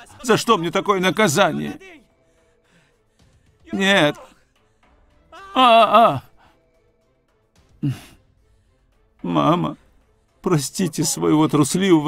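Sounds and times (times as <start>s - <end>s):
faint background music: 0.0s - 12.0s
young man's anguished cry: 5.3s - 6.3s.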